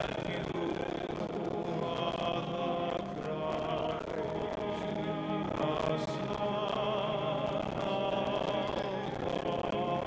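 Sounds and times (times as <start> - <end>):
hymn singing: 0.0 - 10.0.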